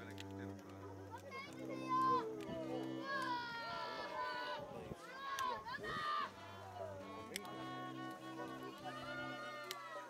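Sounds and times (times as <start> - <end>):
low sustained tones: 0.0 - 9.7
children chattering and calling: 0.0 - 10.0.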